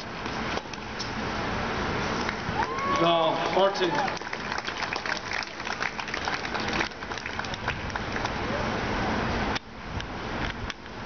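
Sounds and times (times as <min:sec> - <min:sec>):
crowd applause: 0:02.6 - 0:08.4.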